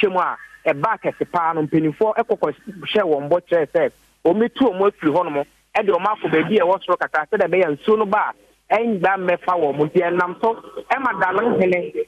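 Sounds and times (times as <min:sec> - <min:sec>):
man talking over telephone: 0:00.0 - 0:12.0.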